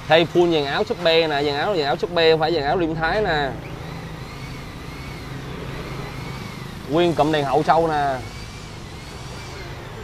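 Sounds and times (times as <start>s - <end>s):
background traffic noise: 0.0s - 10.0s
man speaking: 0.1s - 3.6s.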